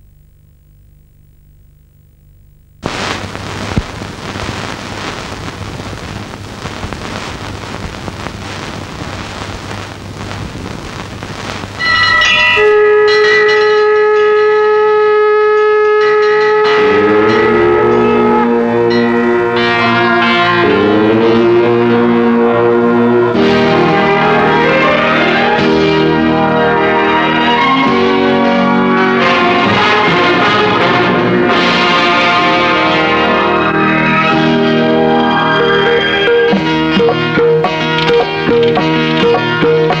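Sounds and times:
faint hum: 0.0 - 11.8
film soundtrack hiss with crackles: 0.0 - 12.8, 22.0 - 40.0
music of long held notes: 11.8 - 40.0.

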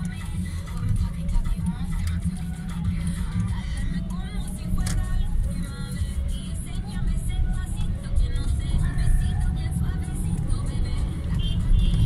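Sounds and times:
car engine and tyres rumble: 0.0 - 12.0
music: 0.0 - 12.0.

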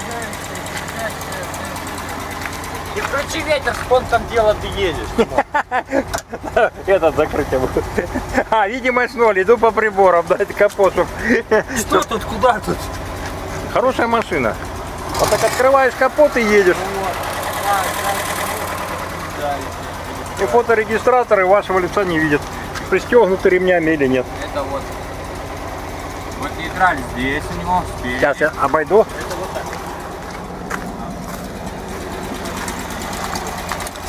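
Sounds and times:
engine idling: 0.0 - 34.0.

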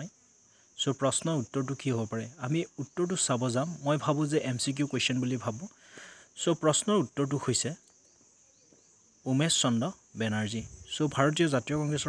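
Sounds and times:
man speaking: 0.8 - 5.7, 6.4 - 7.8, 9.2 - 12.0.

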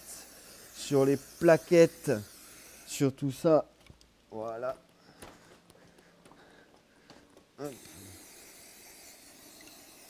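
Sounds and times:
aerosol spray hissing: 0.0 - 3.0, 7.6 - 10.0.

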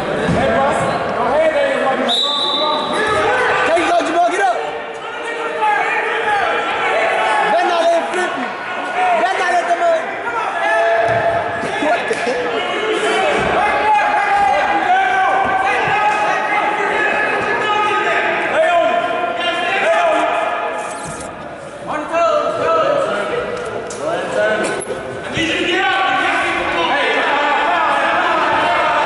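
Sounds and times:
voices shouting in a gymnasium: 0.0 - 29.0.

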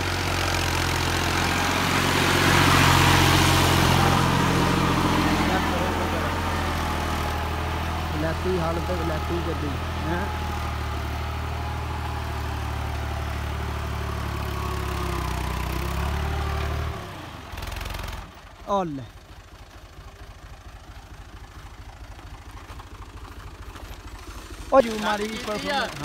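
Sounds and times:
tractor diesel engine droning: 0.0 - 26.0.

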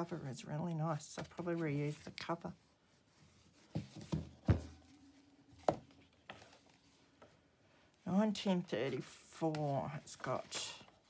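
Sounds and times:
book knocking on table: 3.7 - 4.8
dull thump of book: 3.7 - 4.8.

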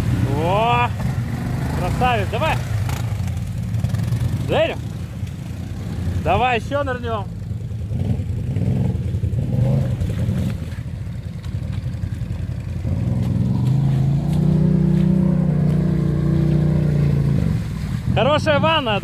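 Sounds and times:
quad engine revving: 0.0 - 4.9, 7.8 - 10.7, 12.8 - 18.3
vehicle splashing through mud: 0.0 - 19.0.

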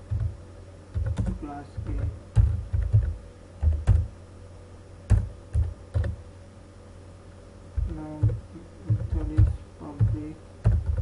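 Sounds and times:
keyboard typing: 0.1 - 4.1, 5.1 - 6.2, 7.8 - 11.0.

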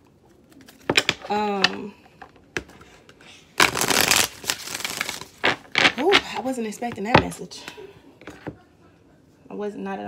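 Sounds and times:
cards crackling: 3.6 - 6.5.

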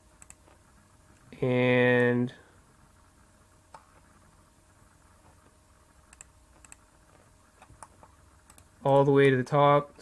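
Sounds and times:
computer mouse and keyboard clicks: 0.2 - 0.6, 6.1 - 9.1.

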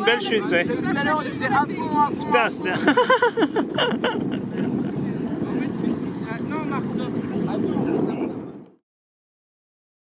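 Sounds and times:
motorboat engine: 0.0 - 8.7
wind rumble on microphone: 0.0 - 8.8.

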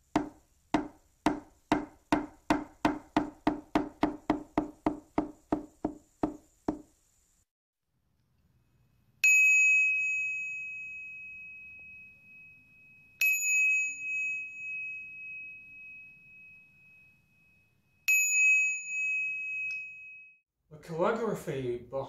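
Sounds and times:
small metal bell ringing: 9.2 - 20.4.

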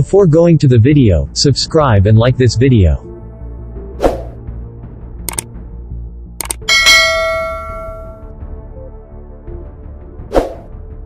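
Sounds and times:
double mouse click: 5.3 - 5.5, 6.4 - 6.7
bell ding: 6.7 - 8.2.

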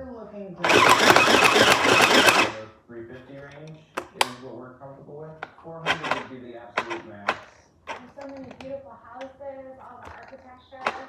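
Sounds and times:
sewing machine running: 0.6 - 2.6, 5.9 - 7.3.

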